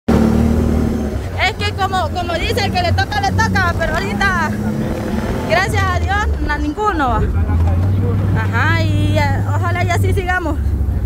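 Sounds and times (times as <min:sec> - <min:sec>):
motorcycle engine running: 0:00.1 - 0:11.0
woman speaking: 0:01.4 - 0:04.6, 0:05.5 - 0:07.3, 0:08.4 - 0:10.6.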